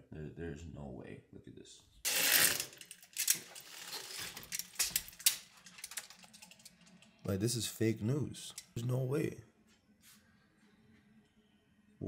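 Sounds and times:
curtain runners rattling on track: 2.1s - 6.9s.

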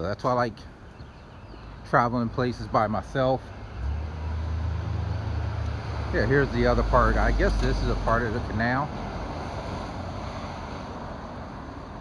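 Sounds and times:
pickup truck driving past: 3.6s - 12.0s.

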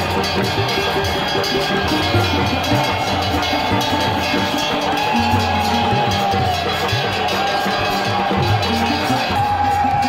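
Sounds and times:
fast continuous drumming: 0.0s - 10.0s
ringing metallic percussion: 0.0s - 10.0s.

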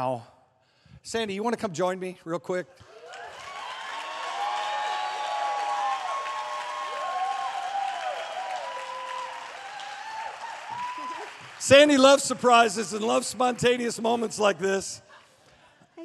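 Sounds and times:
congregation applauding: 2.9s - 14.8s.

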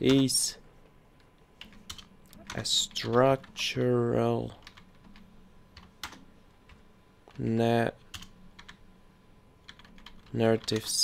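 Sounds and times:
computer keyboard keystrokes: 1.6s - 3.3s, 4.6s - 5.2s, 5.8s - 7.4s, 8.1s - 8.8s, 9.6s - 11.0s.

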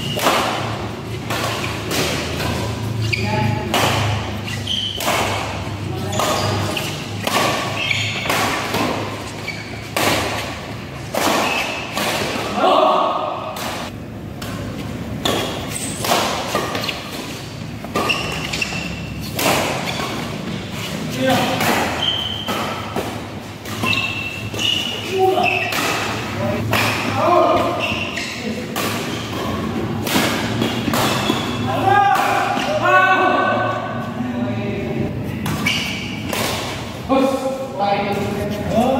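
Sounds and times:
rackets striking shuttlecock: 0.0s - 12.6s, 13.4s - 20.6s, 21.3s - 32.8s
players calling out: 23.8s - 29.6s.

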